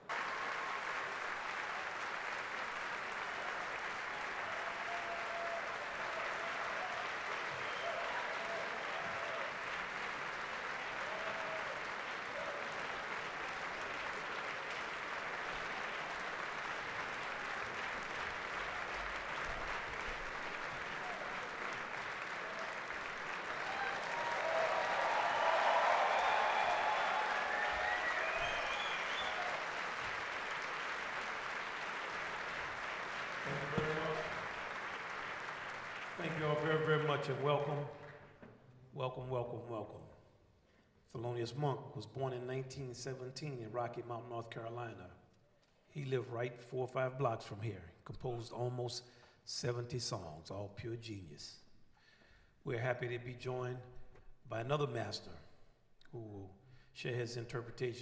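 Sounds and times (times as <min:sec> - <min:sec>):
audience applauding: 0:00.0 - 0:38.1
audience cheering: 0:00.0 - 0:38.1.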